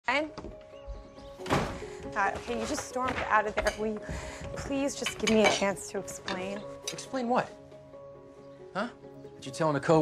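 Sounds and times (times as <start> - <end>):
soft background music: 0.0 - 10.0
door thudding shut: 1.4 - 1.9.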